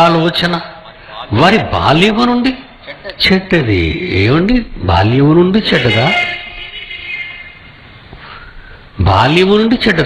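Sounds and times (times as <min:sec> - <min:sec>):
man's amplified voice: 0:00.0 - 0:06.5, 0:09.0 - 0:10.0.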